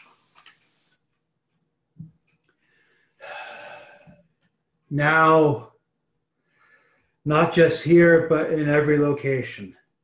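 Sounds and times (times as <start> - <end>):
man's sharp intake of breath: 2.7 - 4.2
man speaking: 4.9 - 5.8, 7.2 - 9.9.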